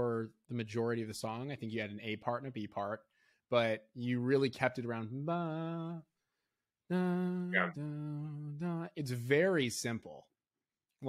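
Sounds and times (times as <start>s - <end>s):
man's voice holding a syllable: 7.5s - 7.8s.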